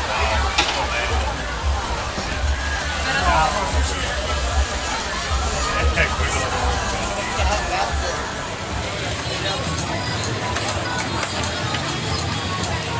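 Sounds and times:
low uneven rumble: 0.0 - 10.0
crowd chatter: 0.0 - 12.9
music: 0.0 - 12.9.

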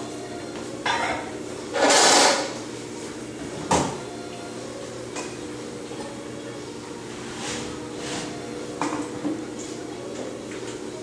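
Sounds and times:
potter's wheel humming: 0.0 - 11.0.

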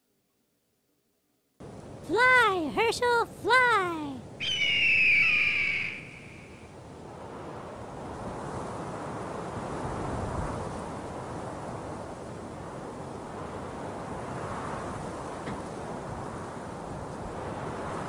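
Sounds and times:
wind rushing: 4.3 - 15.3
bird of prey screech: 4.4 - 6.6.

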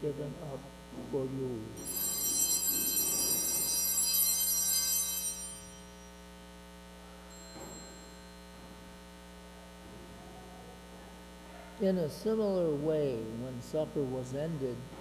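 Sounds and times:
steady electrical hum: 0.0 - 15.0
bright high bells ringing: 1.8 - 6.2, 7.3 - 8.7.

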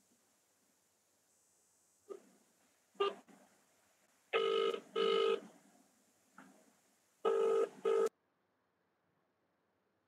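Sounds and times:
telephone ringing: 4.4 - 5.4, 7.3 - 8.1.

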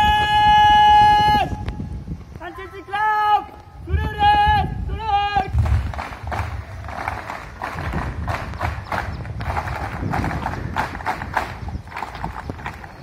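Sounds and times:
marching feet stamping: 5.5 - 13.0.

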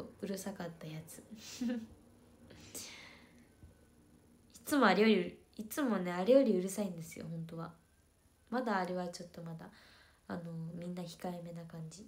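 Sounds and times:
woman laughing softly: 1.3 - 2.0.

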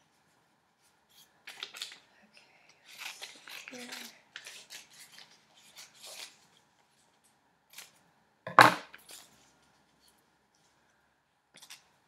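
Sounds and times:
scissors snipping paper: 2.8 - 6.4.

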